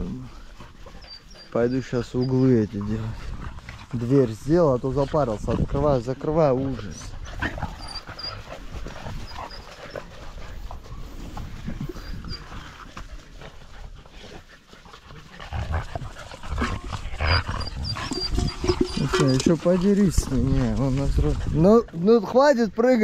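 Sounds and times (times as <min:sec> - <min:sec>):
dogs playing and scuffling: 0:00.0 - 0:23.0
puppy squeaks: 0:01.0 - 0:02.5, 0:17.6 - 0:19.6.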